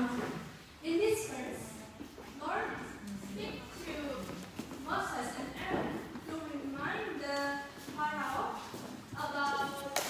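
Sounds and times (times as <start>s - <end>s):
woman talking into a microphone: 2.4s - 10.0s.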